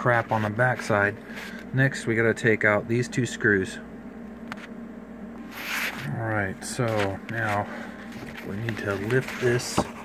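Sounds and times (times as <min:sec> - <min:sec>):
quiet handling sounds: 0:00.0 - 0:01.8, 0:05.4 - 0:10.0
low steady hum: 0:00.0 - 0:10.0.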